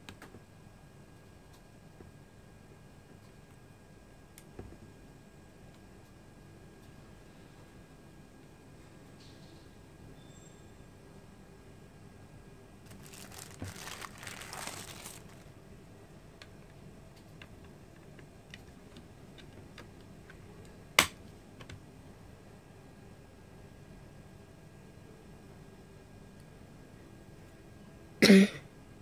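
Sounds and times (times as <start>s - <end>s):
plastic bag crinkling: 12.8s - 15.6s.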